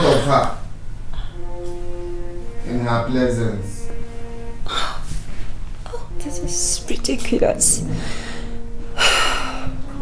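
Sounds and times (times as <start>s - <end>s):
music with long held notes: 0.0s - 10.0s.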